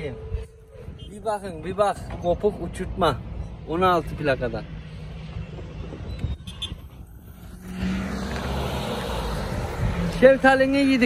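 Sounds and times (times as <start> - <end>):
motor vehicle noise: 0.0 - 11.0.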